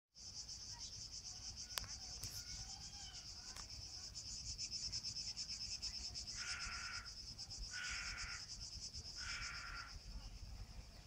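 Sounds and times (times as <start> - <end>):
cicadas buzzing: 0.2 - 11.0.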